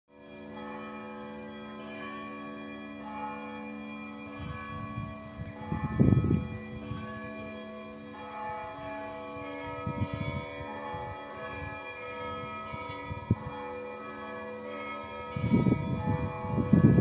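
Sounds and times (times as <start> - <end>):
church bells ringing: 0.1 - 17.0.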